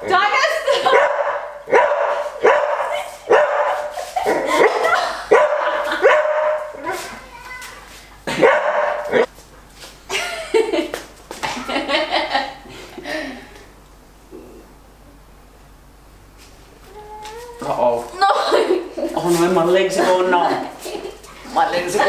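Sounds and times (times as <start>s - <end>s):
dog barking: 0.8s - 7.0s, 8.3s - 9.3s.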